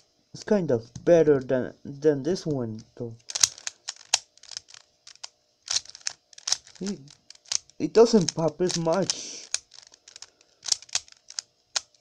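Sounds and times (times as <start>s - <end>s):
puzzle cube plastic clicks: 3.2s - 12.0s.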